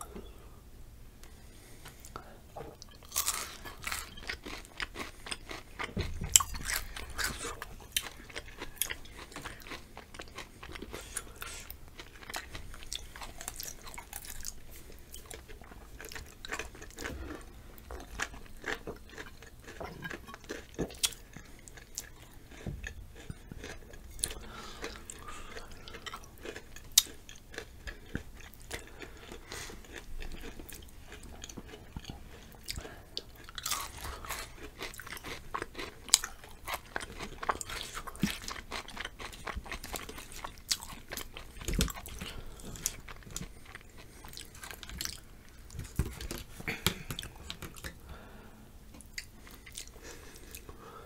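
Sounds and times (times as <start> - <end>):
crunching and chewing chips: 2.8 - 48.0, 48.9 - 50.8.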